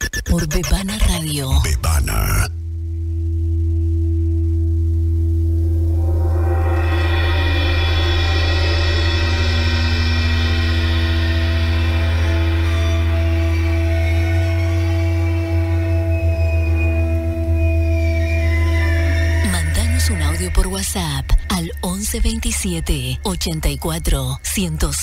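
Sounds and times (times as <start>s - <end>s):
steady low drone: 0.8s - 25.0s
struck gong-like tone: 2.8s - 22.3s.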